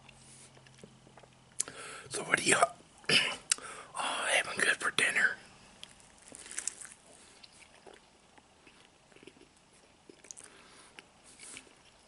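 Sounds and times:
man whispering: 2.1s - 2.8s, 3.9s - 5.5s.

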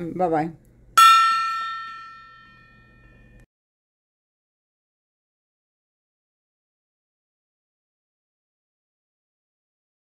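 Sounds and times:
small brass gong ringing: 1.0s - 3.4s.

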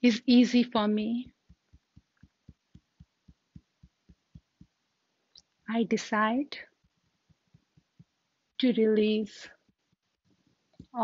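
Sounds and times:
fingertips tapping on face: 1.2s - 4.8s, 6.7s - 8.2s, 9.5s - 11.0s.

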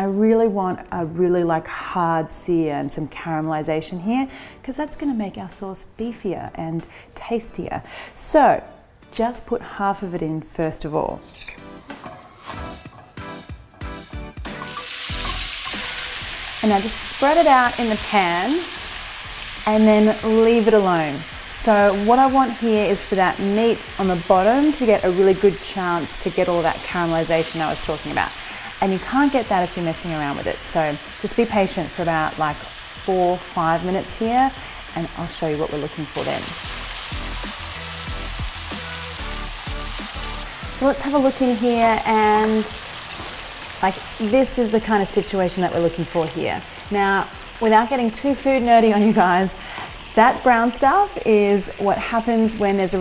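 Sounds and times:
background music with steady beat: 10.1s - 23.2s, 36.2s - 43.8s, 46.6s - 50.5s
background music with a beat: 11.6s - 16.5s, 36.6s - 40.8s
meat sizzling in a frying pan: 14.5s - 53.0s.

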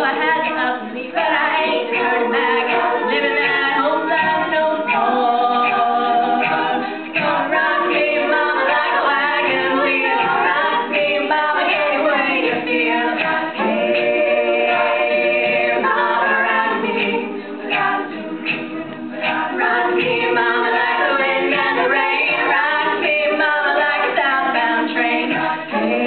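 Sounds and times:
women singing a cappella: 0.0s - 26.0s.

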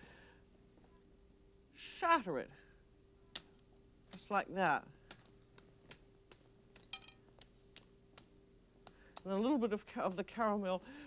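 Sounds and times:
caramel strands snapping: 3.3s - 10.3s.

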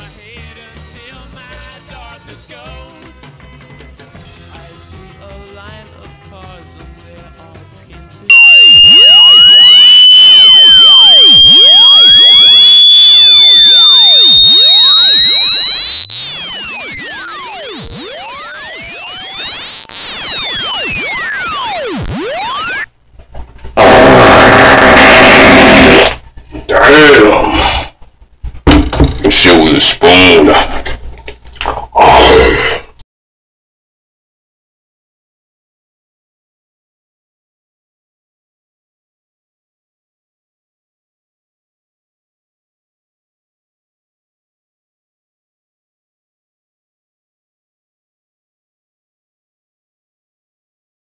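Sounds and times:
low tone sweeping upward: 8.3s - 22.9s
piercing electronic tone: 8.3s - 22.9s.

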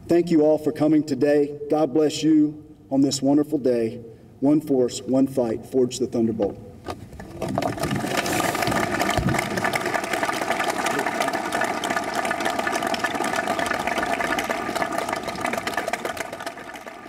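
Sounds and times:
audience applause: 7.6s - 17.0s.

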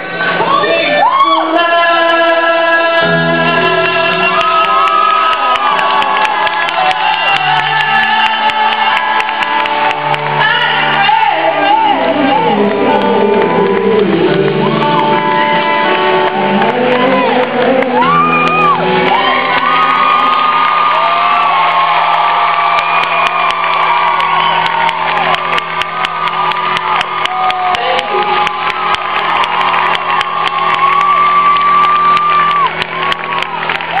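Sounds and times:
crowd cheering and clapping: 0.0s - 1.8s, 3.0s - 34.0s.

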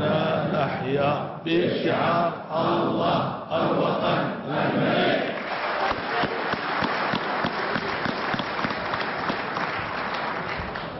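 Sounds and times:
crowd applauding: 5.3s - 10.9s.

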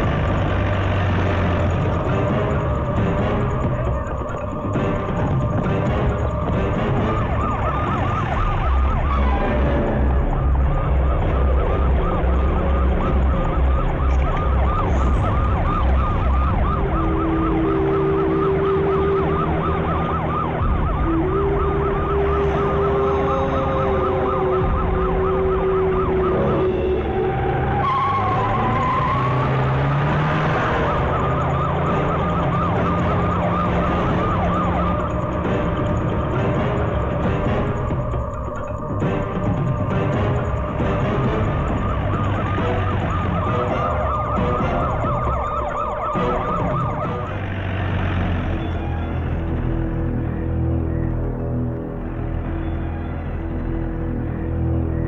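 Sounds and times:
tense action score: 0.0s - 55.0s
siren-like warbling figure: 0.1s - 51.2s.

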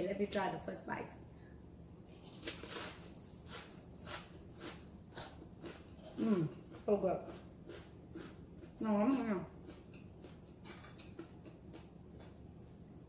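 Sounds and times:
crunchy chewing of rice cracker: 2.1s - 8.8s.

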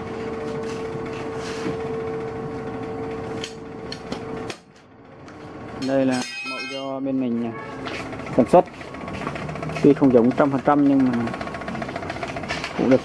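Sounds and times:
steady machine hum: 0.0s - 13.0s
metal knocks and clatter: 5.8s - 7.1s.

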